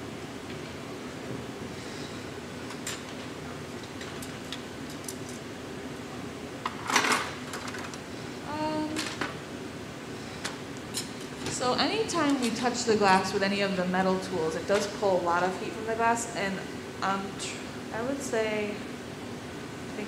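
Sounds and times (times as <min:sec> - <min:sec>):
furnace roaring: 0:00.0 - 0:20.0.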